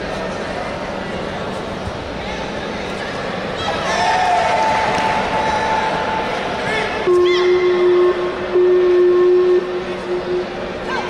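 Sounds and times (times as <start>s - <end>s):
arena crowd noise: 0.0s - 11.0s
low horn blasts: 7.0s - 10.8s.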